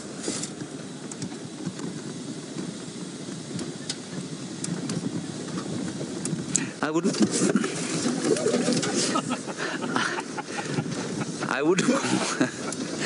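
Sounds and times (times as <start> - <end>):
vehicle engine and road rumble: 0.0 - 13.0.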